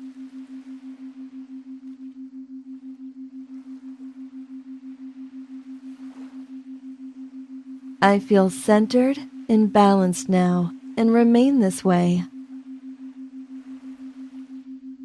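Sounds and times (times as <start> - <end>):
pulsing low electronic tone: 0.0 - 15.0.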